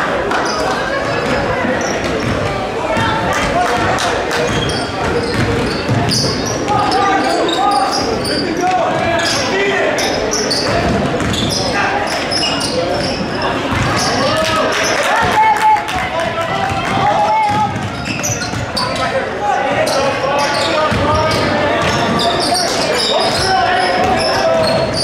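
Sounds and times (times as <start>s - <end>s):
echoing voices: 0.0s - 25.0s
basketball dribbling: 1.0s - 7.0s, 10.5s - 11.6s
shoes squeaking on hardwood court: 4.3s - 15.0s, 17.5s - 25.0s.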